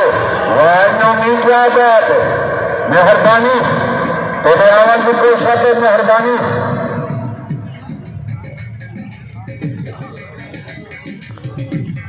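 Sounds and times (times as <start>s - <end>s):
man calling over loudspeaker: 0.0s - 12.0s.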